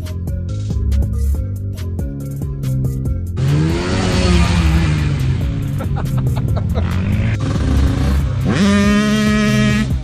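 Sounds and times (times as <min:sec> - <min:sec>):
quad bike engines running: 0:03.4 - 0:10.0
quad engine revving high: 0:03.4 - 0:10.0.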